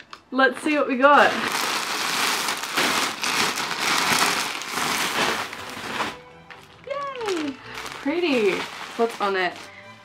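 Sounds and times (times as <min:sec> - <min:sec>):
plastic mailer bag crinkling: 0:01.1 - 0:10.0.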